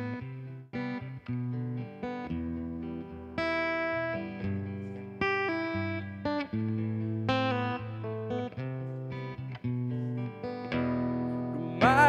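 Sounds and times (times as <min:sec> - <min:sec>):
acoustic guitar plucked chords: 0:10.8 - 0:12.0.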